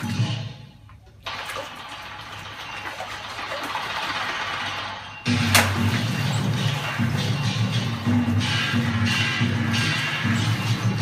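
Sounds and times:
water splashing and sloshing: 0:00.0 - 0:11.0
loud music with pulsing beat: 0:05.1 - 0:11.0.

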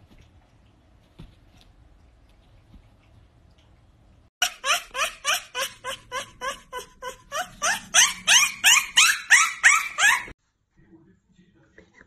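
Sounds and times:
puppy yipping: 0:04.4 - 0:10.4.

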